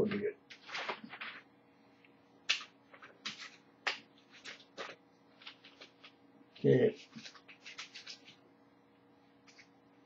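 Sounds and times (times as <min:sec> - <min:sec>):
paper rustling and crackling: 0:00.0 - 0:01.5, 0:02.5 - 0:08.4.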